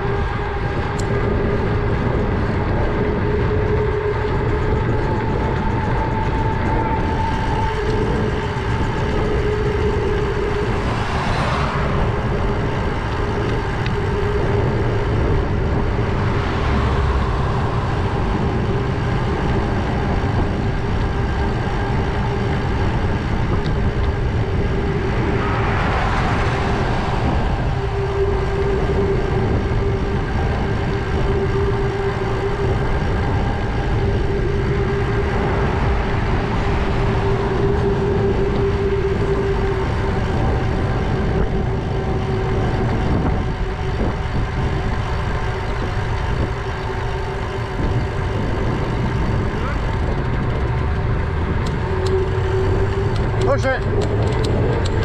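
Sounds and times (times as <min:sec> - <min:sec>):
cars passing: 0:00.0 - 0:55.0
steady hum: 0:00.0 - 0:55.0
wind noise on microphone: 0:00.0 - 0:55.0.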